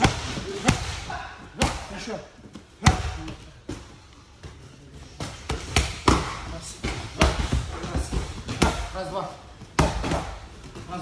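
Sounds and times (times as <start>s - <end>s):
punches and kicks on focus mitts: 0.0s - 2.1s, 5.2s - 9.0s, 9.7s - 10.4s.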